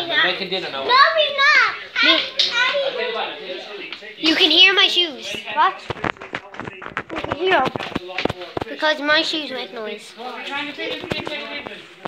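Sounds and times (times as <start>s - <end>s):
indistinct talking: 0.0s - 12.0s.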